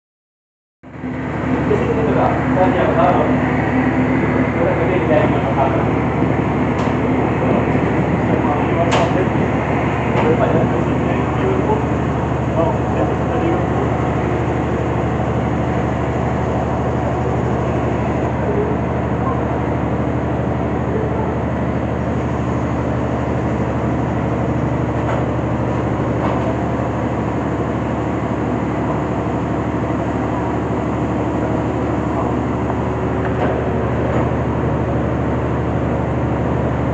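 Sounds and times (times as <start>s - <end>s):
boat engine droning: 0.8s - 36.9s.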